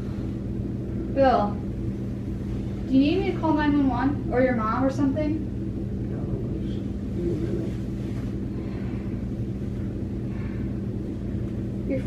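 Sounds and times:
low room hum: 0.0 - 12.0
faint murmur: 6.1 - 12.0.

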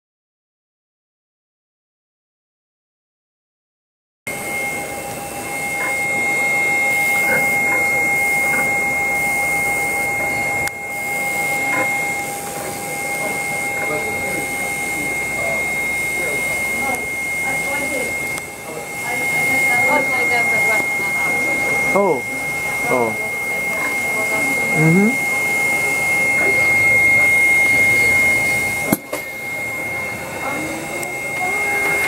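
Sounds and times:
high-pitched machine whine: 4.3 - 32.0
machine noise: 4.3 - 32.0.

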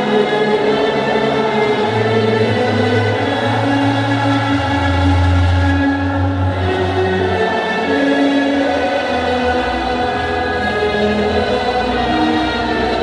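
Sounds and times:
choir singing long held notes: 0.0 - 13.0
low bass drone: 1.9 - 7.6.

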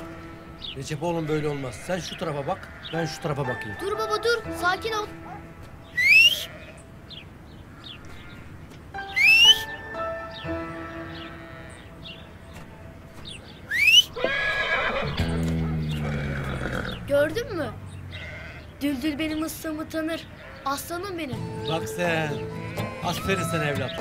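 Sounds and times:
man whistling: 6.0 - 6.5, 9.1 - 9.8, 13.7 - 14.2
horse whinnying: 13.7 - 17.1.

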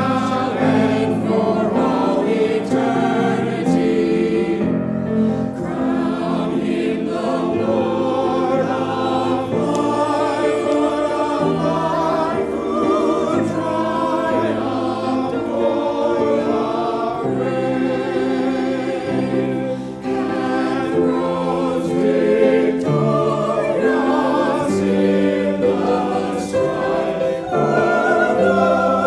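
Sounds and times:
choir singing: 0.0 - 29.0.

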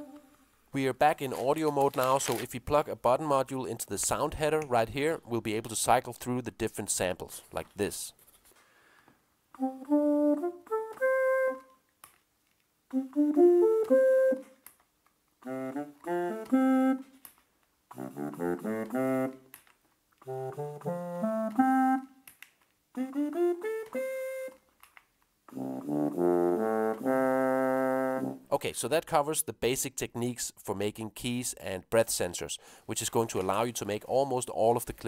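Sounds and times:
electronic ocarina notes: 9.6 - 11.8, 12.9 - 14.6, 15.5 - 17.1, 18.0 - 19.4, 20.3 - 22.2, 23.0 - 24.6.

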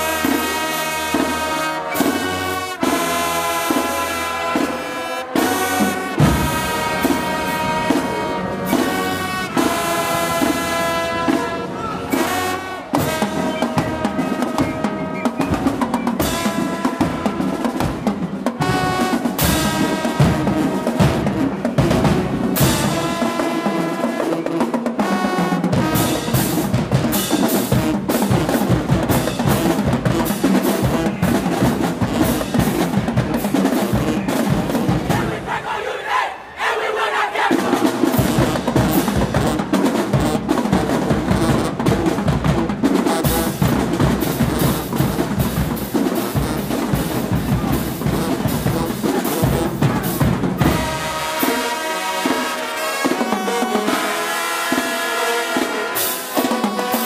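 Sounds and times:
snare drums: 0.0 - 35.8, 36.9 - 57.0
trombones: 0.0 - 57.0
bass drums: 37.6 - 51.1.

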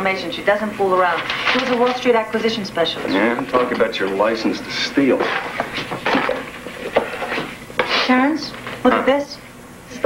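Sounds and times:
paper rustling: 1.0 - 2.1.

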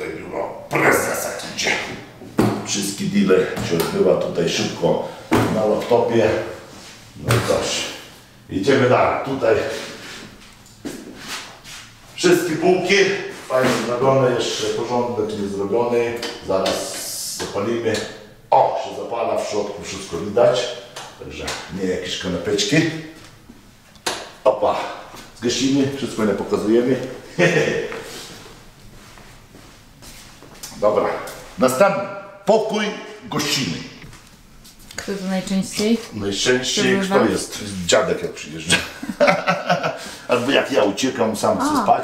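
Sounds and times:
soft footsteps on hard floor: 27.9 - 30.6.

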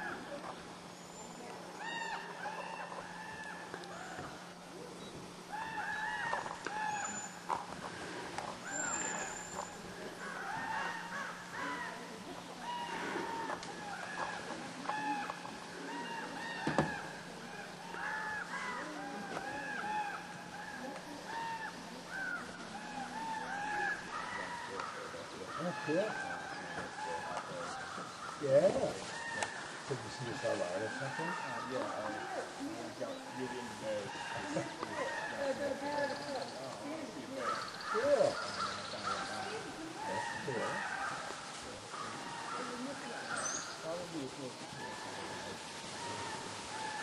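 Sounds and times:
faint background voices: 0.0 - 47.0
faint steady hum: 0.0 - 47.0
flock of birds calling: 0.0 - 47.0.

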